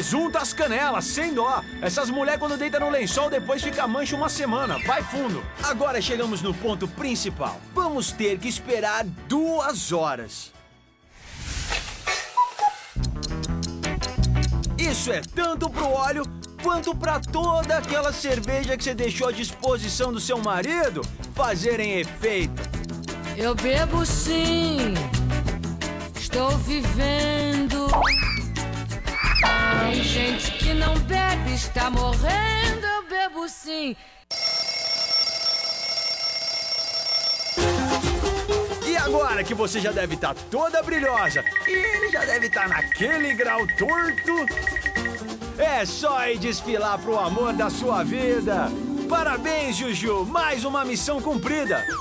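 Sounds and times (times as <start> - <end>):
alarm clock ringing: 34.3 - 37.7, 40.9 - 45.3.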